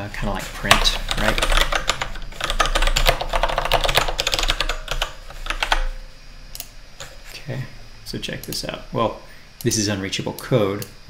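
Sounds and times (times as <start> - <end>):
fast computer keyboard typing: 0.6 - 5.9.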